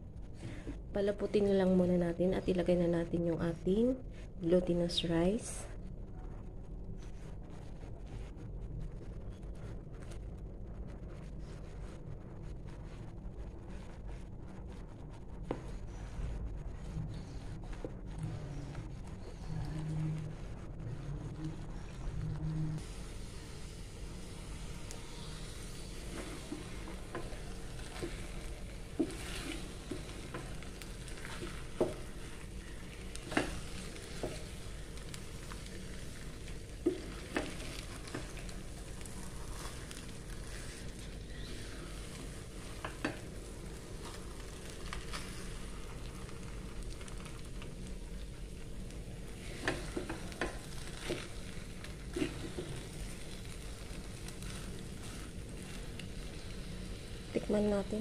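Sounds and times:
steady low hum: 0.0s - 58.0s
wooden spatula stirring rice: 22.8s - 58.0s
spatula knocking and scraping pot: 25.5s - 38.5s, 49.4s - 51.5s.

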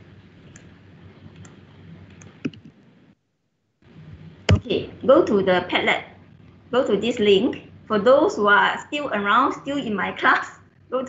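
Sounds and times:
low background hum: 0.0s - 11.0s
mouse and keyboard clicks: 1.3s - 2.7s.

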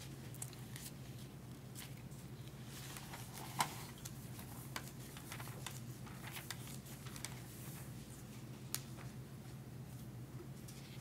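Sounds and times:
low steady hum: 0.0s - 11.0s
book pages turning: 0.5s - 8.0s
paper rustling and flicking: 0.6s - 9.2s.

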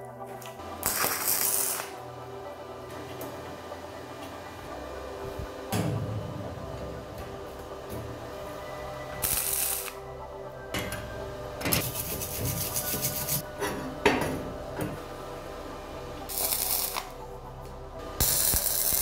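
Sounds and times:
welding arc crackle: 0.7s - 2.0s, 9.2s - 10.0s, 16.3s - 17.2s, 18.2s - 19.0s.

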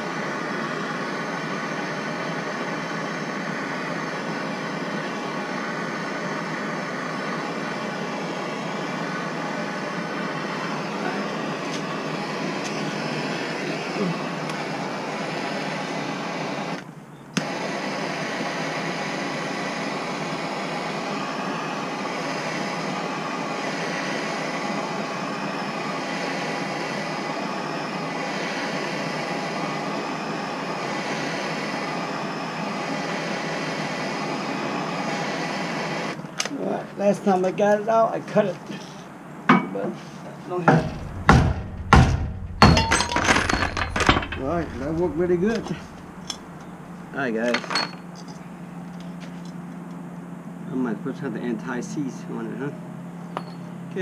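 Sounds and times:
gas torch flame hissing: 0.0s - 16.8s, 17.4s - 36.2s, 44.0s - 46.7s.

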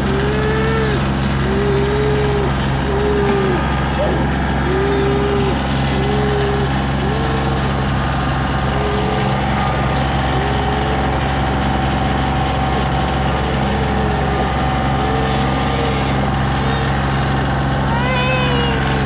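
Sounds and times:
steady whine: 0.0s - 19.0s
tractor diesel engine running: 0.0s - 19.0s.

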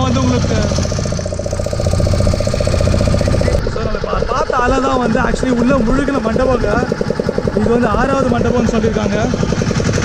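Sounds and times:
boat motor running: 0.0s - 10.0s.

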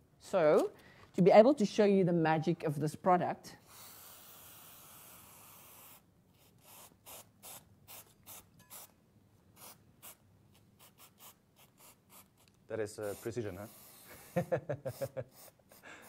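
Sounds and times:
aerosol spray hiss: 13.0s - 15.9s.

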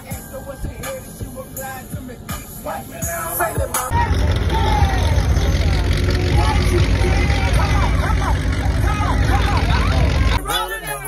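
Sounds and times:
music: 0.0s - 11.0s
truck engine rumbling: 0.0s - 11.0s
people shouting and talking: 2.7s - 11.0s.

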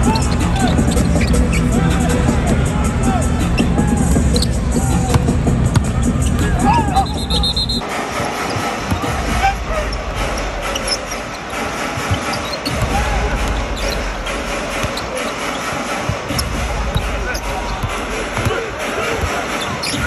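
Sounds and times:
arena crowd din: 0.0s - 20.0s.

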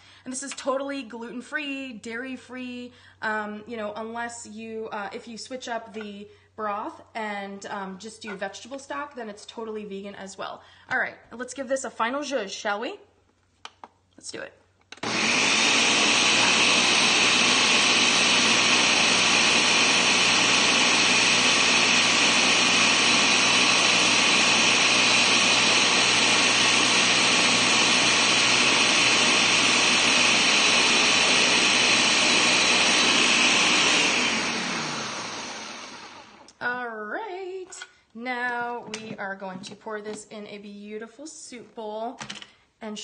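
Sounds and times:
blender running: 15.0s - 36.6s.

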